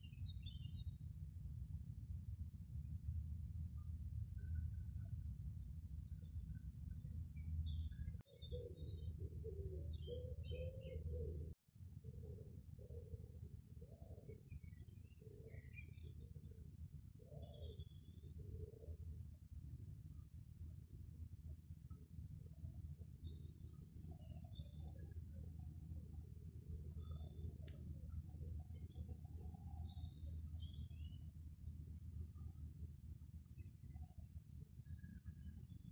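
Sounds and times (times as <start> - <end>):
small birds chirping: 0.0 - 1.8, 5.6 - 20.4, 22.3 - 32.7
low steady rumble: 0.0 - 8.2
lower repeated bird notes: 0.0 - 35.9.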